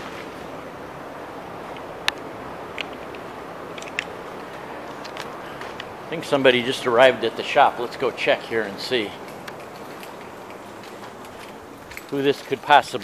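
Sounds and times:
truck engine rumbling: 0.0 - 13.0.

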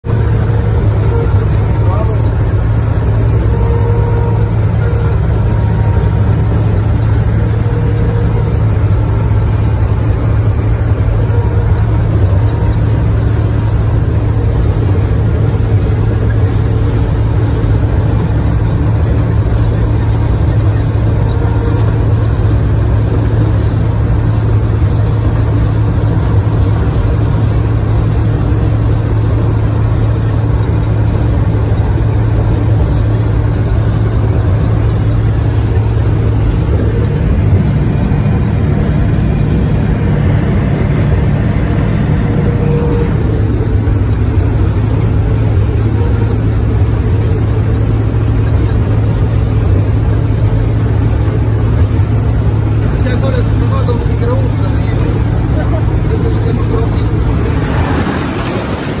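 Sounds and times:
combine harvester engine drone: 0.0 - 59.0.

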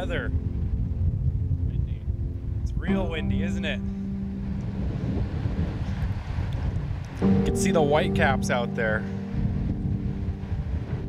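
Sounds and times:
strong wind buffeting microphone: 0.0 - 11.0.

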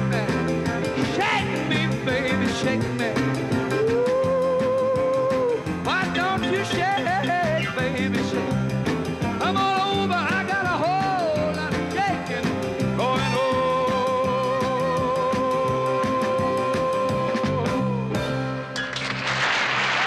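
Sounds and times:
rolling piano: 0.0 - 19.5
rock and roll band playing: 0.0 - 20.0.

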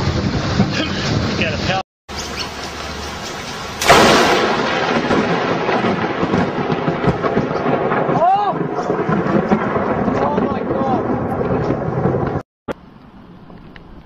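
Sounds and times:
thunder rolling and crackling: 0.0 - 1.8, 2.8 - 12.4
rain: 0.0 - 12.4.

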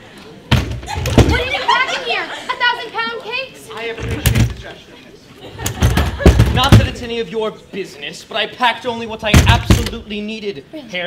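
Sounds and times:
loud thud: 0.5 - 1.5, 5.7 - 7.0, 9.3 - 10.0.

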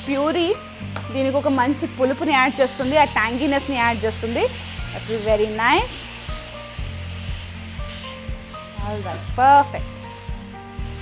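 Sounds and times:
meat sizzling in a pan: 0.0 - 11.0.

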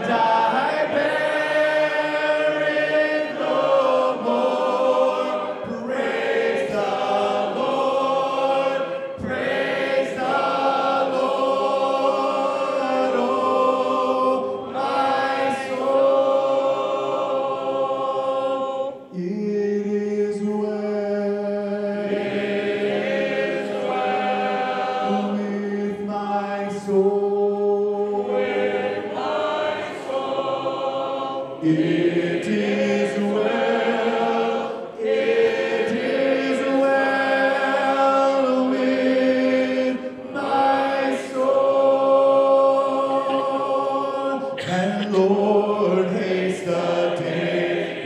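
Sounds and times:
man singing through a microphone: 0.0 - 3.3, 19.1 - 22.0, 25.0 - 28.1, 44.0 - 47.6
congregation singing a hymn: 0.0 - 48.0.

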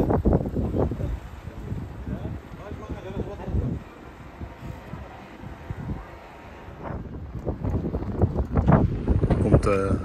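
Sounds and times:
street ambience: 0.0 - 10.0
wind buffeting microphone: 0.0 - 10.0.

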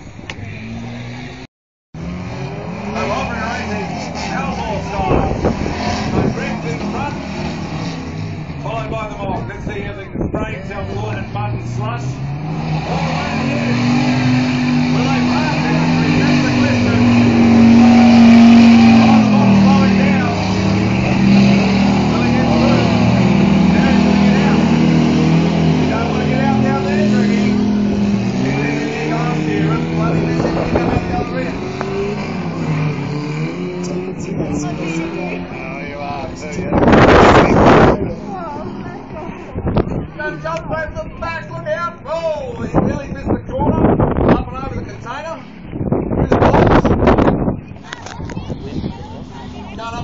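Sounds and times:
off-road engine revving: 0.0 - 50.0.

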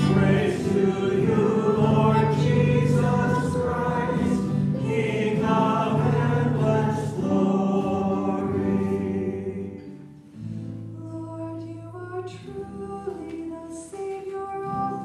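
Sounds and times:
choir singing sustained chords: 0.0 - 10.1.

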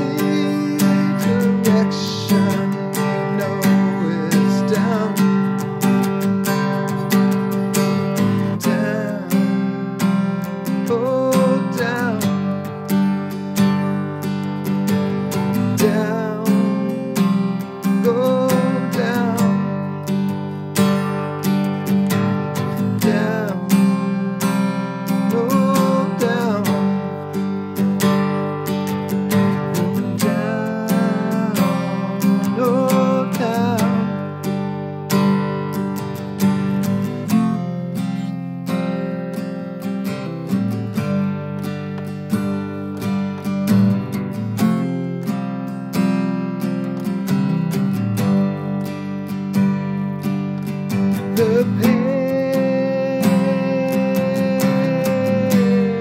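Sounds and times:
man singing: 0.0 - 13.1, 15.0 - 20.3, 22.0 - 28.3, 29.3 - 34.7, 50.9 - 56.0
acoustic guitar strumming chords: 0.0 - 56.0.

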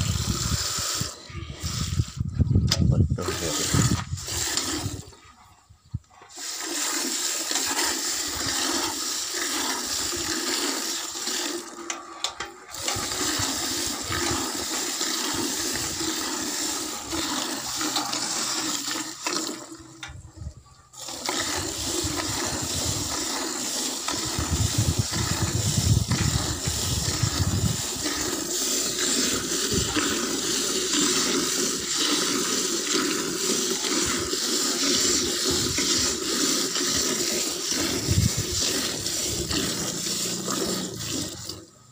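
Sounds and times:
milk squirting into steel bucket: 0.0 - 5.5, 6.1 - 20.2, 20.9 - 41.8.

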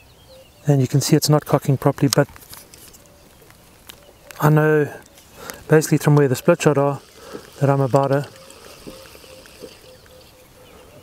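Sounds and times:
faint steady tone: 4.0 - 11.0.

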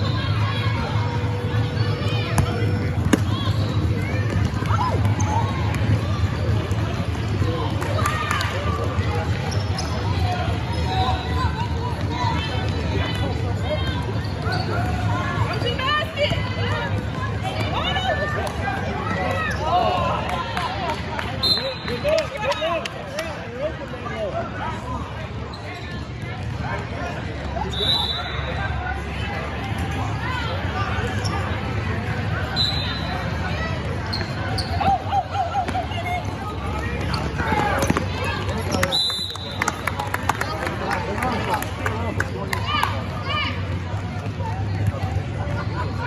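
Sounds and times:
chatter of spectators: 0.0 - 46.0.

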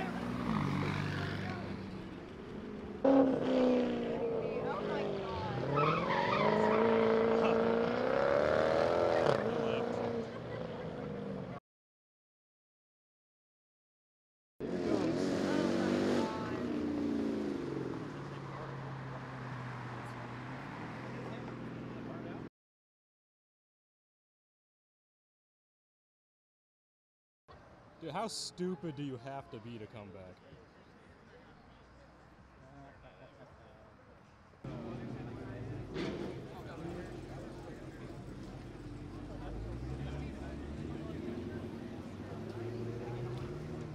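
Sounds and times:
sports car engine passing by: 0.0 - 11.6, 14.6 - 22.5, 34.6 - 43.9
car engine driving past: 34.7 - 43.9.

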